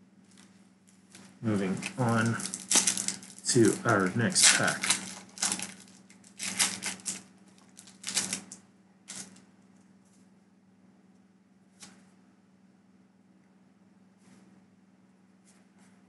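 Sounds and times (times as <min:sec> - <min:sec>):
foil wrapper crinkling: 0:00.3 - 0:09.4.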